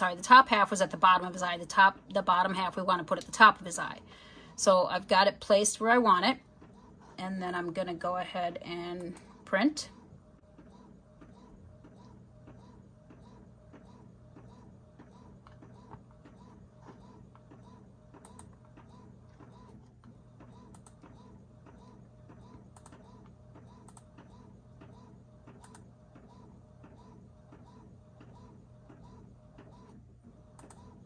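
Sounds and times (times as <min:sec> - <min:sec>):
inkjet printer printing: 0:00.0 - 0:31.0.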